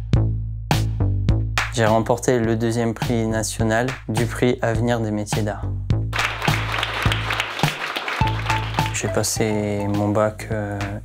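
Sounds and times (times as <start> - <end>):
music with steady beat: 0.0 - 11.0
small group applauding: 6.1 - 9.5.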